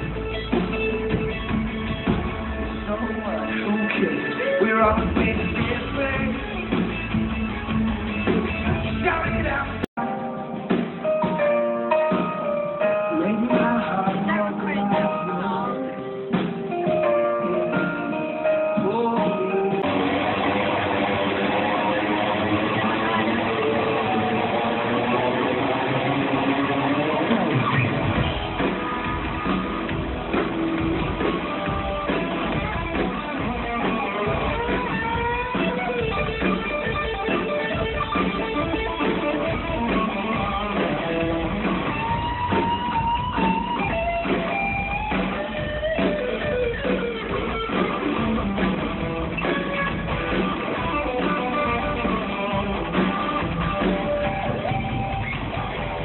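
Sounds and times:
live band with guitar: 0.0 - 56.0.

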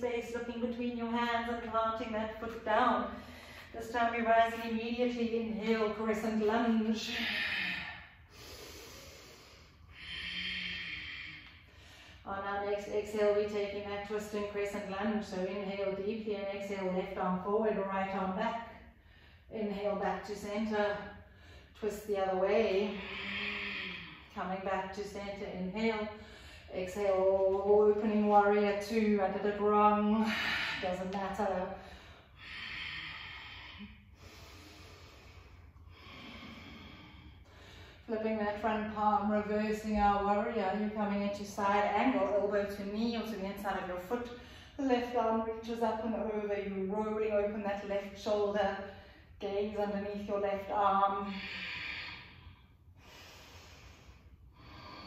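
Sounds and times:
woman breathing slowly: 3.0 - 3.8, 5.6 - 12.3, 18.7 - 19.5, 20.6 - 25.1, 26.1 - 26.8, 29.9 - 38.2, 44.3 - 44.8, 48.2 - 49.4, 50.6 - 55.0.

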